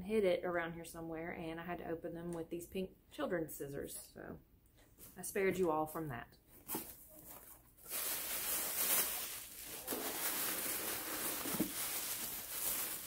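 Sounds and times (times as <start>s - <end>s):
packaging rustling: 6.6s - 13.0s.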